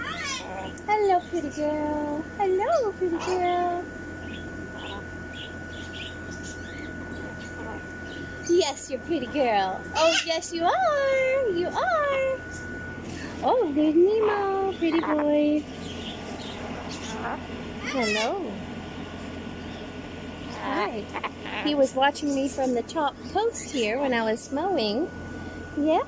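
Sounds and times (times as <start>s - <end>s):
small birds chirping: 0.0s - 11.2s, 13.9s - 24.2s
cockatoo soft call: 4.3s - 8.4s, 16.4s - 18.4s
faint high-pitched tone: 5.7s - 15.6s.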